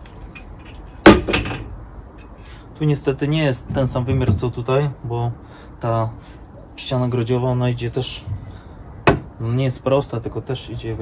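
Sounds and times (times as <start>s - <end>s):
aluminium angle knocking: 9.0s - 9.4s.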